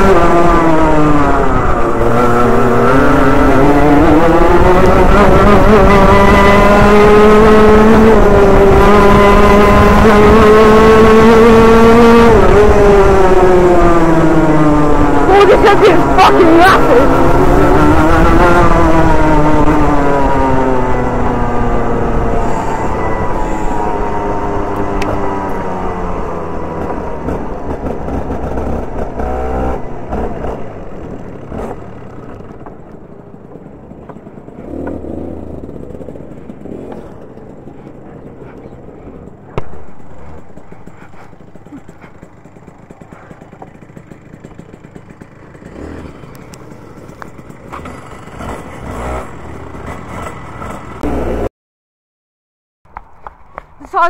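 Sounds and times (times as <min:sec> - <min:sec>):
kart engine: 0:00.0 - 0:51.5.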